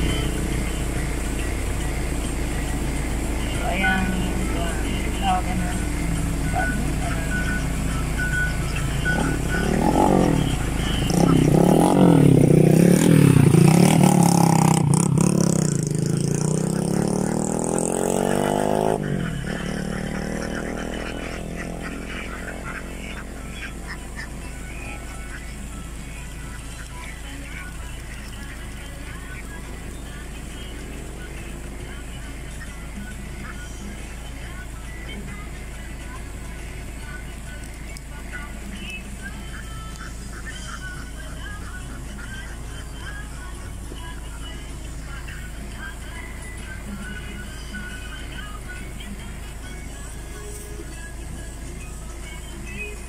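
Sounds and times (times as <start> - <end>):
motor vehicle passing: 0.0 - 34.6, 35.2 - 44.2
ducks quacking: 3.5 - 29.6, 39.2 - 43.2.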